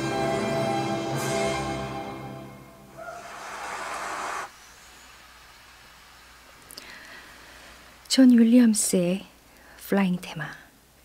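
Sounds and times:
orchestral note: 0.0 - 2.9
audience applauding: 3.2 - 4.5.

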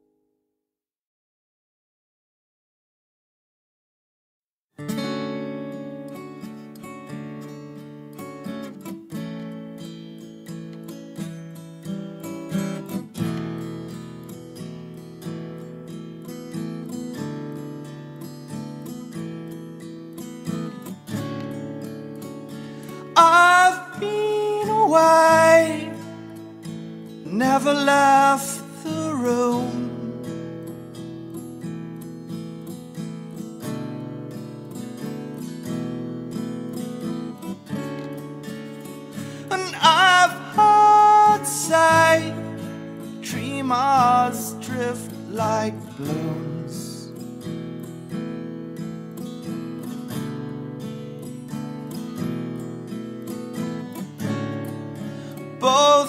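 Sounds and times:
acoustic guitar strumming: 4.8 - 56.0.

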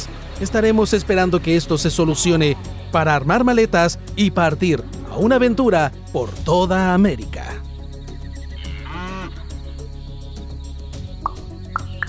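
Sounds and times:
background music: 0.0 - 12.0
cow mooing: 8.5 - 9.5.

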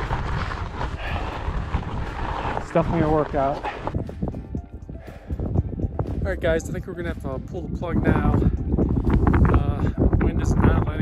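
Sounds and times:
bike tyres crunching over rock: 0.0 - 4.0
wind buffeting microphone: 0.0 - 11.0.

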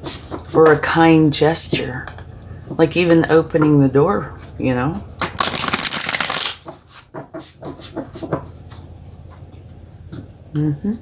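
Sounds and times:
cards being shuffled: 5.2 - 8.9.

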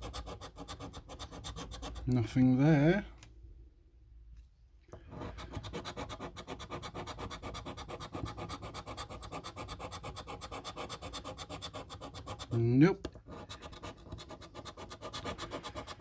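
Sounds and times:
scratchcard being scraped: 0.0 - 2.1, 5.0 - 16.0.

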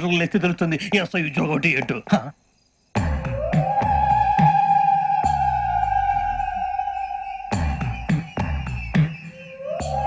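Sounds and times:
man speaking: 0.0 - 2.4.

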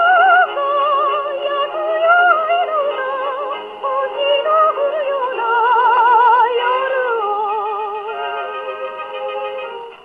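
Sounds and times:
old jazz song on gramophone: 0.0 - 10.0.

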